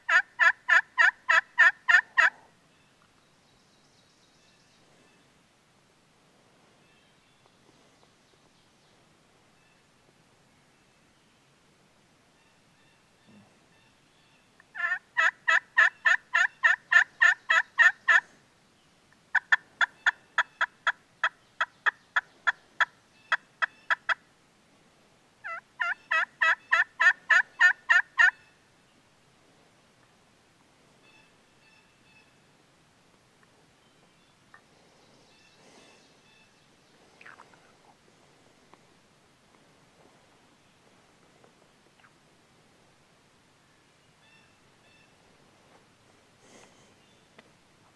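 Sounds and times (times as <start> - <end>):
turkey call hen yelps: 0.1 - 2.5, 14.7 - 18.3, 25.4 - 28.5
faint rustles: 4.2 - 10.7, 32.8 - 43.5, 44.6 - 47.9.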